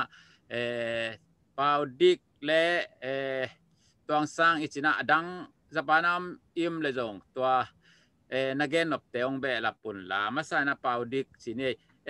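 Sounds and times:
man speaking: 0.0 - 11.8.

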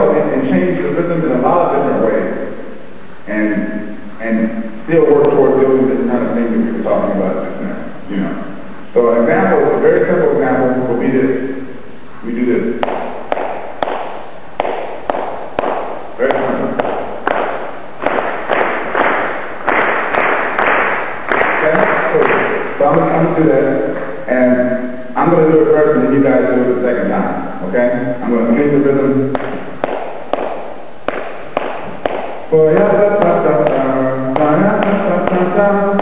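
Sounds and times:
hand claps: 12.8 - 22.6, 29.4 - 36.0.

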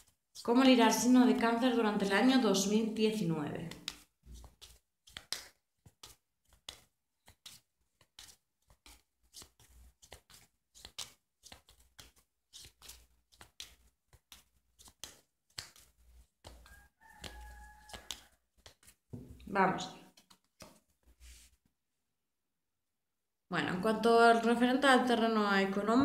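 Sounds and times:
cards clicking and flicking: 3.7 - 19.0, 20.2 - 20.8.

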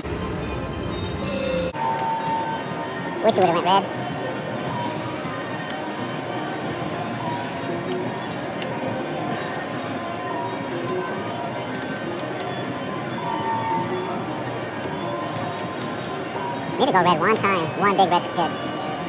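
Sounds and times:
din of slot machines: 0.0 - 19.0
slot machine chimes and jingles: 1.2 - 5.2, 12.6 - 19.0.

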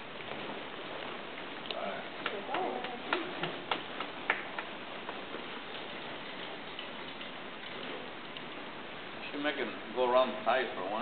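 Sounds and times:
steady background hiss: 0.0 - 11.0.

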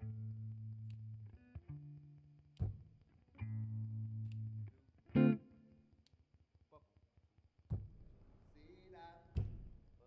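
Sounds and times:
electric guitar chords: 3.4 - 5.8.

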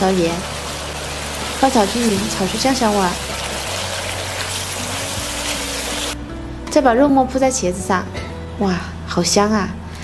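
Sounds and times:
food sizzling in a wok: 0.0 - 6.2.

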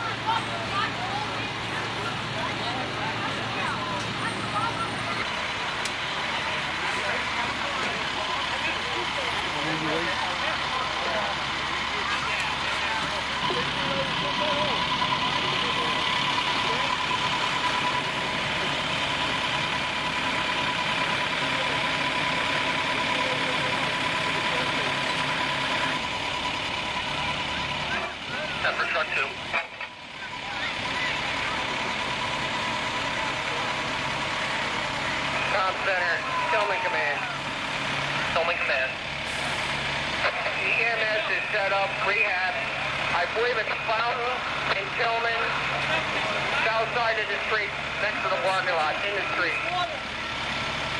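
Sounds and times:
fire truck engines running: 0.0 - 50.9
indistinct voices: 0.0 - 50.9.

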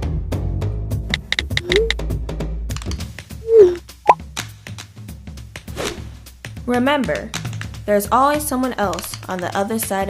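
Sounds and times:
high blip: 1.2 - 2.0, 3.5 - 3.8
short sliding blips: 1.2 - 2.0, 3.5 - 3.8
touchscreen taps and beeps: 1.2 - 2.0
soft background music: 2.7 - 10.0.

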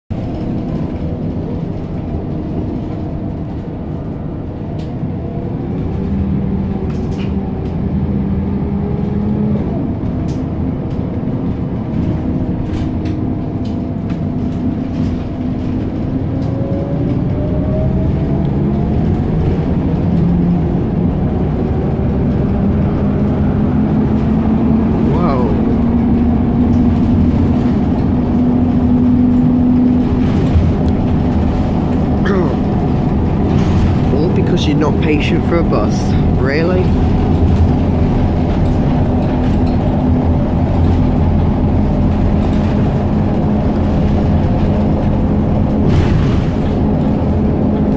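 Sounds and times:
bus engine rumbling: 0.1 - 47.9.

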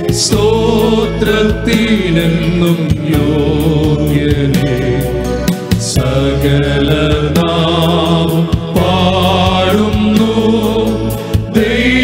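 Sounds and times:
instrumental backing with bass: 0.0 - 12.0
male vocal group singing in harmony: 0.0 - 12.0.

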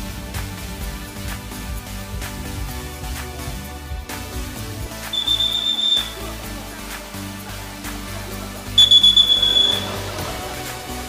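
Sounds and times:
background music: 0.0 - 11.0
high-pitched whistle blast: 5.1 - 6.3, 8.8 - 10.0.

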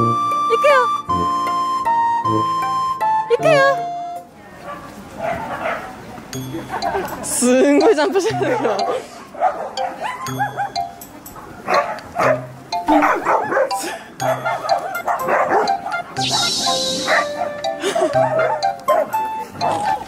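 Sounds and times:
dogs barking: 4.6 - 6.0, 8.2 - 20.0
music with steady beat: 6.4 - 9.0, 13.7 - 20.0.

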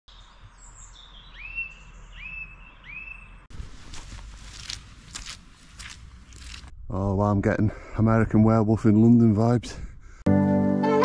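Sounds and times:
footsteps on muddy path: 3.5 - 6.7.

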